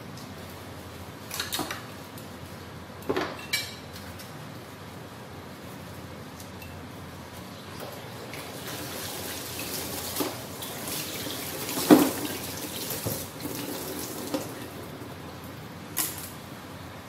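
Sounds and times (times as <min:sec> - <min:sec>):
tap water running into sink: 0:08.3 - 0:14.8.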